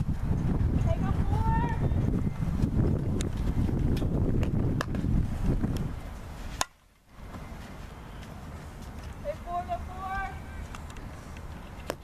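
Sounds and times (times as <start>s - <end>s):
wind rumbling on microphone: 0.0s - 6.6s.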